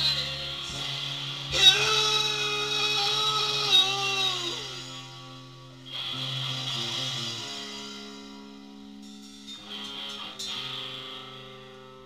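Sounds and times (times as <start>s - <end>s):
electric guitar sustained note: 0.0s - 12.0s.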